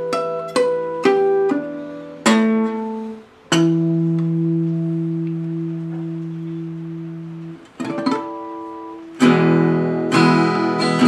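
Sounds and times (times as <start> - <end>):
acoustic guitar chord ringing: 0.0 - 11.0
acoustic guitar plucked notes: 0.0 - 11.0.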